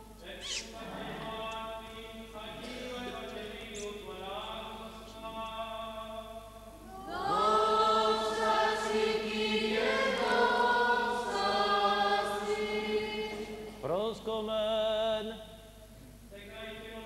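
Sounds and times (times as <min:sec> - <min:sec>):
men chanting long notes: 0:00.8 - 0:15.4.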